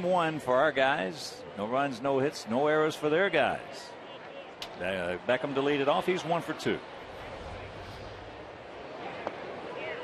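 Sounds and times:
crowd murmur: 6.1s - 10.0s.

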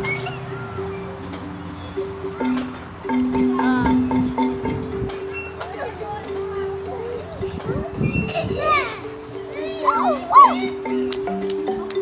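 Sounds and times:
children's playground voices: 0.0s - 12.0s
child squealing: 9.8s - 10.8s.

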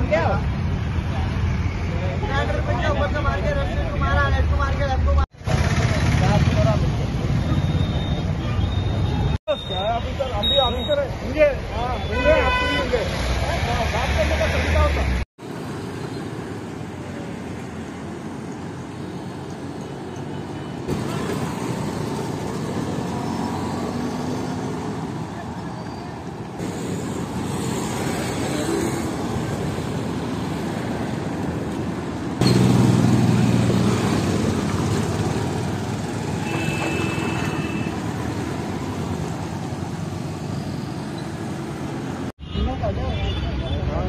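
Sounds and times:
road traffic: 0.0s - 44.0s.

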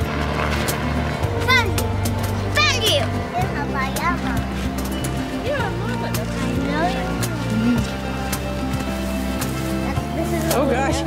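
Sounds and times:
low held music chords: 0.0s - 11.0s.

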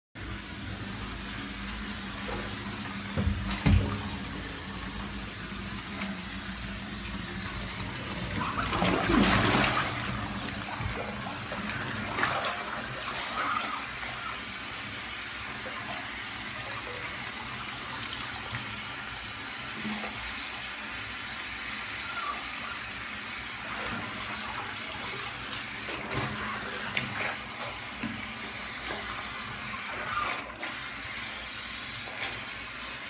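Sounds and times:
water running into bathtub: 0.2s - 33.0s
water splashing: 5.7s - 14.4s.

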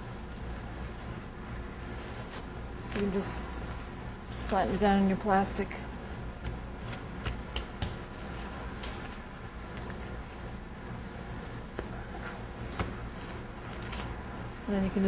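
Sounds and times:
plastic wrap crinkling: 0.0s - 15.0s.

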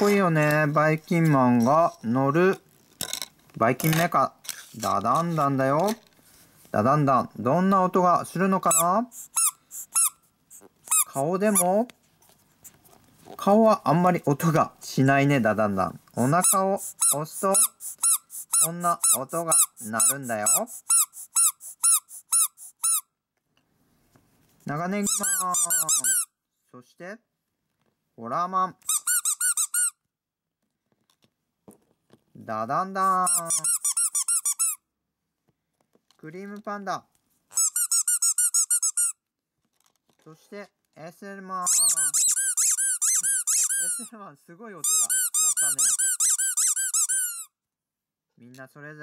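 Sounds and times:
squeeze toy squeaking: 8.6s - 11.8s, 16.2s - 23.1s, 25.0s - 26.3s, 28.8s - 30.0s, 33.0s - 34.8s, 37.5s - 39.2s, 41.6s - 44.1s, 44.8s - 47.6s.

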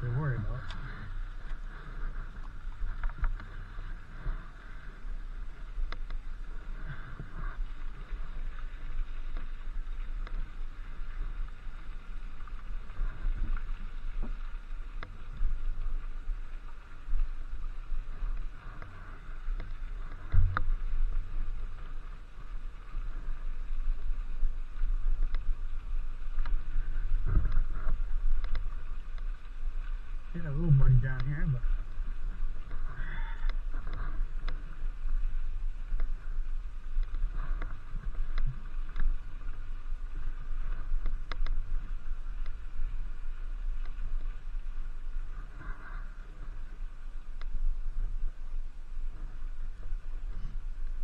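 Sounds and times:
tyre rumble and wind hiss: 0.0s - 51.0s.

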